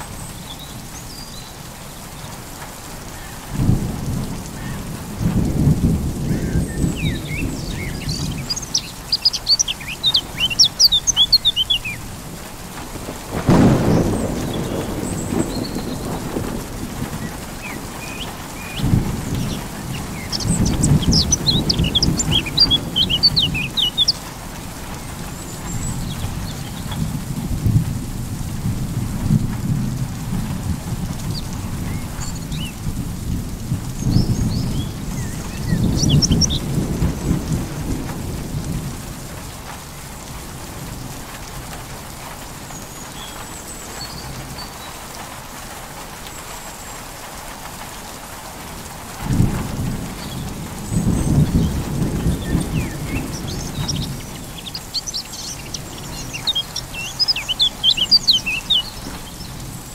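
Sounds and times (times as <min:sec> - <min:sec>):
steady rain: 0:00.0 - 0:59.9
thunder rumbling: 0:03.1 - 0:59.9
thunder clap: 0:03.5 - 0:44.8, 0:48.7 - 0:54.9
birds chirping: 0:06.2 - 0:27.2, 0:31.2 - 0:32.8, 0:34.0 - 0:37.9, 0:42.1 - 0:45.2, 0:50.2 - 0:59.9.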